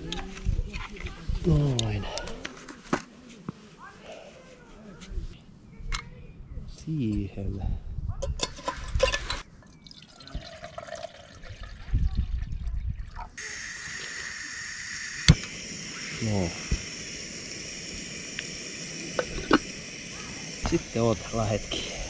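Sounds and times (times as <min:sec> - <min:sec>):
water pouring into pot: 0:09.8 - 0:21.8
gas stove burner hissing: 0:13.4 - 0:22.0.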